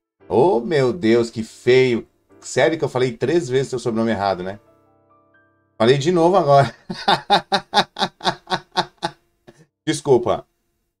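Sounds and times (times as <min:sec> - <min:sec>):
man laughing: 0:06.6 - 0:09.6.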